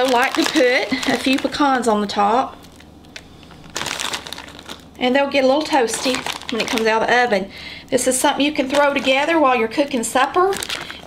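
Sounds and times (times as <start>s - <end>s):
plastic pouch crinkling: 0.0s - 7.4s, 8.5s - 11.0s.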